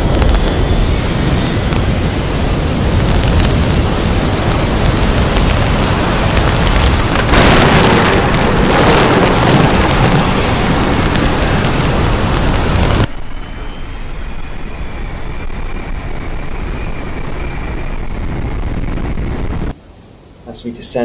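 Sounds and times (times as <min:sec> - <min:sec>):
rushing rumble: 0:00.0 - 0:20.5
faint falling high tones: 0:13.1 - 0:18.1.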